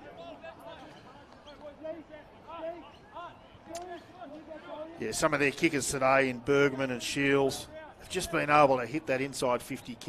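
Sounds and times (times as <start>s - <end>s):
open-air ambience: 0.0s - 10.0s.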